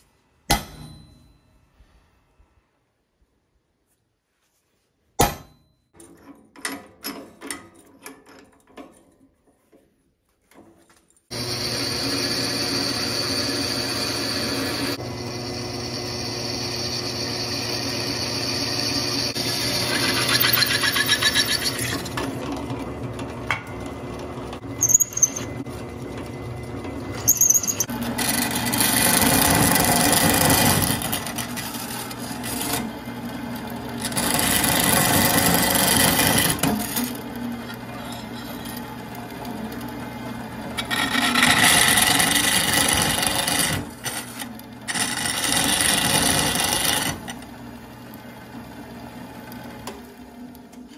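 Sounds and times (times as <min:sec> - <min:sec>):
hammer striking center punch: 0:05.2 - 0:05.7
drill press drilling steel: 0:11.3 - 0:22.0, 0:27.1 - 0:47.6
brief squeaks: 0:24.8 - 0:25.6, 0:27.2 - 0:27.9.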